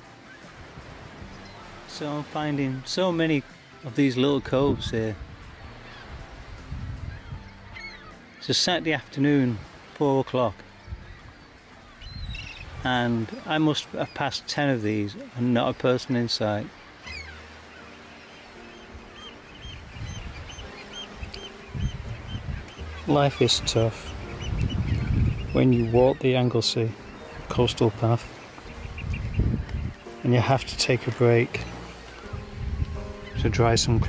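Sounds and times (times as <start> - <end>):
honking bird call: 7.0 - 9.0, 10.8 - 14.4, 16.7 - 33.8.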